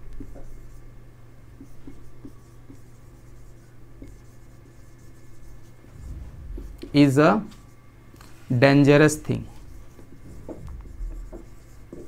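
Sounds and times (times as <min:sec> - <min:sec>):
marker pen writing on whiteboard: 0:00.2 - 0:00.8, 0:01.6 - 0:05.8, 0:09.7 - 0:12.0.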